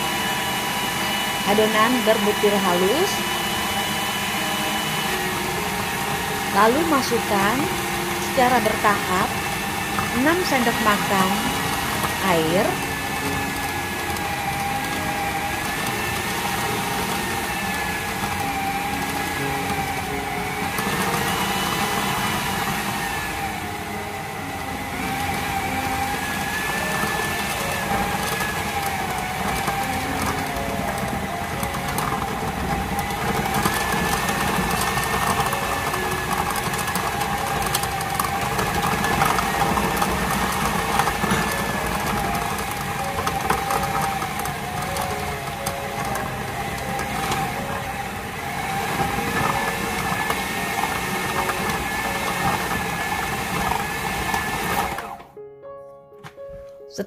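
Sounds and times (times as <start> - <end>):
food processor motor whining: 0.0 - 55.4.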